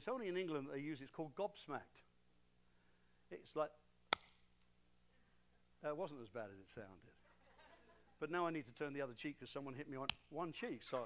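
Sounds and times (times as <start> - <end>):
hand smack: 4.1 - 4.4.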